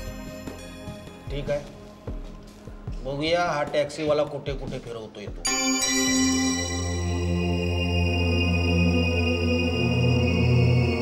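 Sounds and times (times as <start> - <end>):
music of long held notes: 5.5 - 11.0
steady low drone: 6.6 - 11.0.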